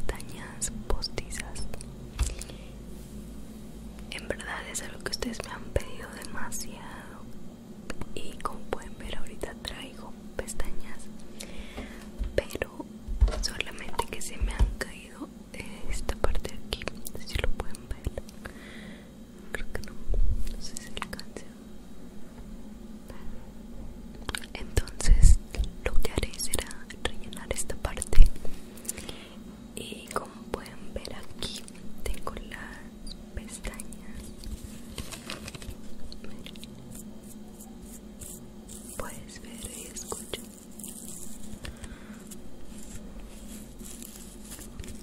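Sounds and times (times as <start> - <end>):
person whispering close-up: 0.0 - 1.8, 4.1 - 7.2, 13.5 - 18.2, 19.5 - 21.6, 29.8 - 34.3, 36.2 - 36.7, 37.3 - 41.2.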